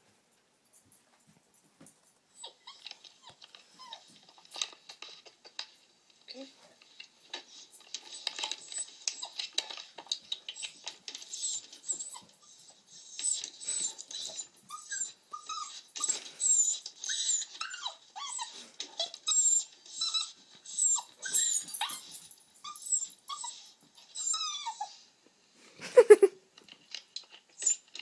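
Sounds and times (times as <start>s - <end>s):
puppy whimpering and crying: 2.3s - 4.8s, 7.9s - 25.1s.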